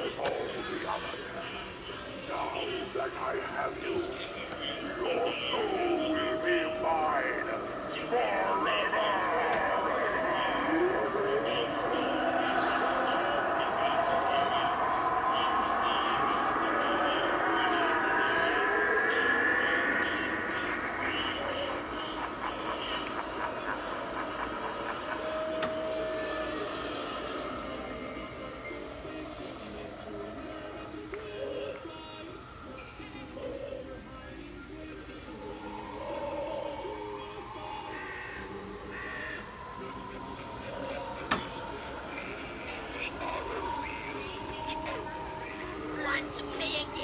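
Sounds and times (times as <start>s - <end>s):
eerie wavering gliding tones: 0.0s - 47.0s.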